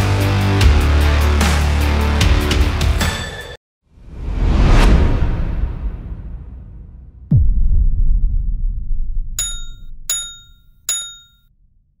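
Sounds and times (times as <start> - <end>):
deep low rumble: 4.6 - 9.4
bright metallic dings: 9.4 - 11.4.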